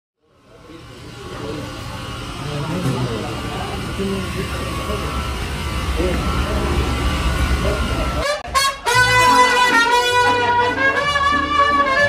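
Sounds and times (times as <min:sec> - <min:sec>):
low hum of kitchen equipment: 0:00.2 - 0:08.4
scattered voices: 0:00.4 - 0:08.5.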